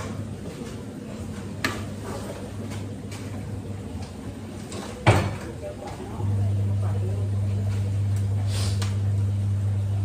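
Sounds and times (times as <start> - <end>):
steady low hum: 5.4 - 10.0.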